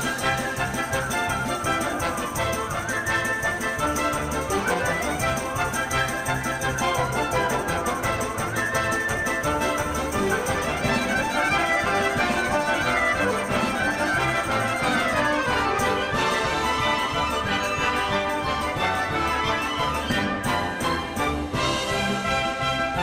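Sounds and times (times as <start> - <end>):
orchestral folk-dance music: 0.0 - 23.0.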